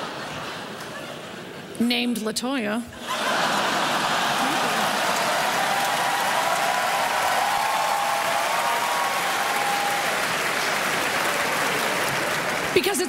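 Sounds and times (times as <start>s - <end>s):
audience applauding: 3.1s - 13.0s
voices cheering: 3.2s - 12.7s.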